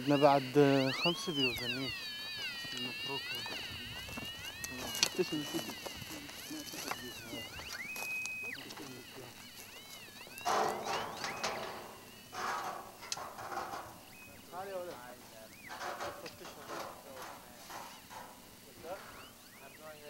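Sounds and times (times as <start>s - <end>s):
men talking indistinctly: 0.0s - 20.0s
rustling and scraping: 0.9s - 19.6s.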